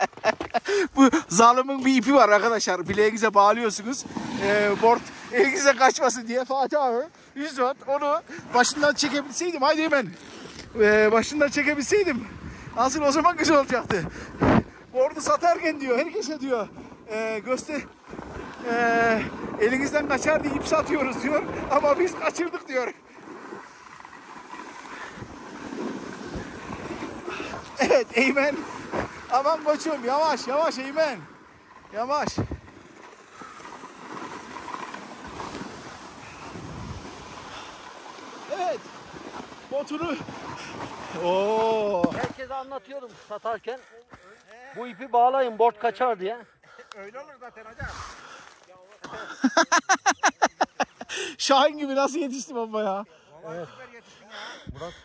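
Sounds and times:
man laughing: 0.0s - 1.3s, 49.0s - 51.4s
snowboard scraping over snow: 0.0s - 6.7s, 7.4s - 43.6s
wind on microphone: 11.8s - 12.8s, 36.2s - 37.7s.

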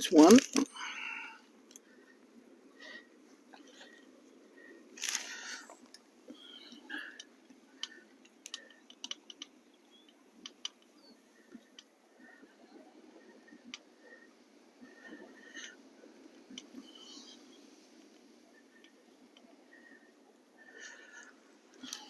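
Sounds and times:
faint steady hiss: 0.0s - 22.0s.

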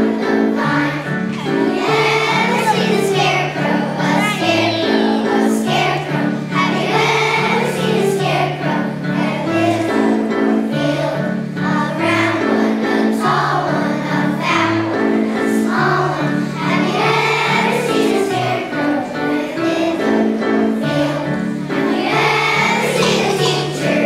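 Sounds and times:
children's choir singing: 0.0s - 24.0s.

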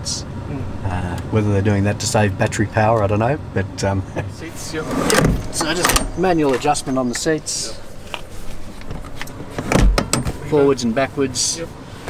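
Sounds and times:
low thump: 4.8s - 7.3s
rustling: 7.6s - 9.8s.

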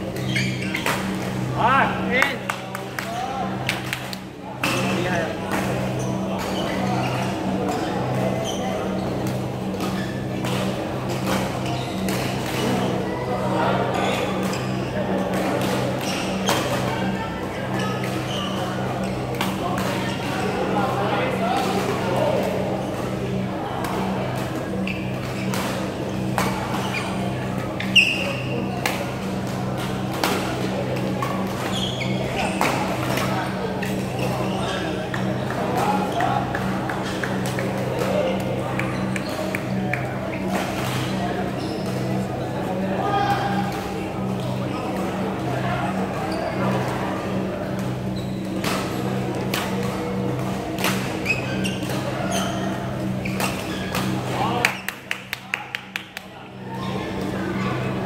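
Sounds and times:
chatter of players: 0.0s - 58.0s.

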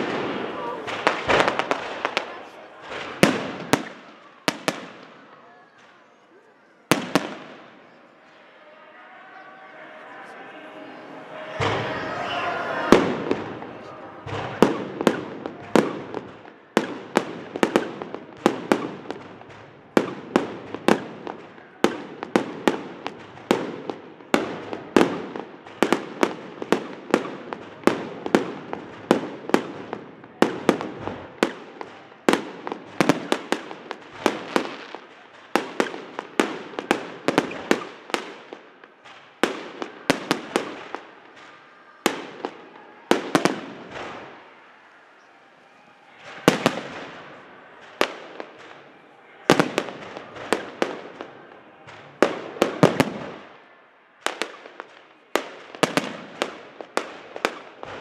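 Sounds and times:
fireworks bursting: 0.0s - 58.0s.

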